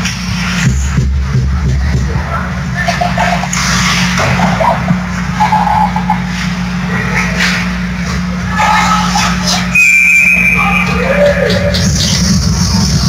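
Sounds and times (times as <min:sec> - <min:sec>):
steady low hum: 0:00.0 - 0:13.0
spectators' voices: 0:00.8 - 0:13.0
referee's whistle blast: 0:09.7 - 0:11.0.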